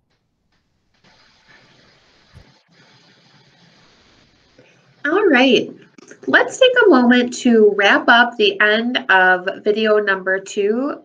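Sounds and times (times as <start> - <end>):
low even hiss: 0.0 - 10.9.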